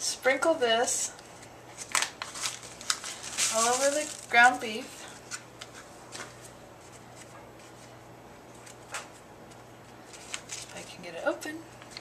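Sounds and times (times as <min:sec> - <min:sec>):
low steady hum: 0:00.0 - 0:12.0
crinkling seasoning packets: 0:01.8 - 0:04.6.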